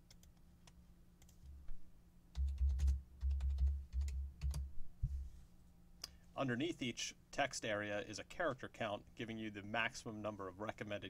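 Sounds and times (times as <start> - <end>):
typing on computer keyboard: 2.4 - 4.7.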